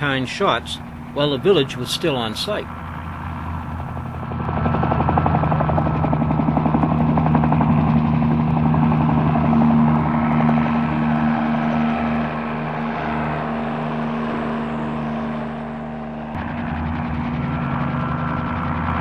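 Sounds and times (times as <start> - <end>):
helicopter engine and rotor hum: 0.0 - 19.0
rotor blades chopping: 0.0 - 19.0.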